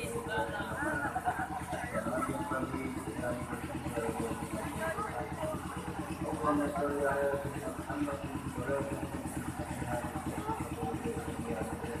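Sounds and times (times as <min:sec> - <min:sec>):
engine idling: 0:00.0 - 0:12.0
man reciting prayer into microphone: 0:01.9 - 0:05.4, 0:06.2 - 0:10.2.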